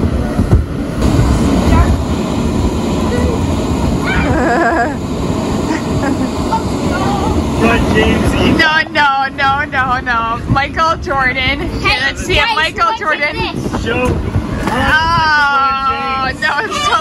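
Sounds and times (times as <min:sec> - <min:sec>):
electric blower running: 0:00.9 - 0:10.3
child calling: 0:04.0 - 0:04.4
child laughing: 0:04.0 - 0:05.0, 0:05.7 - 0:07.4
children's voices: 0:06.5 - 0:07.5.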